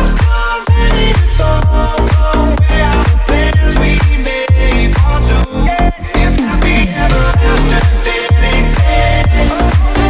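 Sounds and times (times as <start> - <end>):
kick drum: 0.0 - 5.2, 6.8 - 10.0
electronic dance music: 0.0 - 10.0.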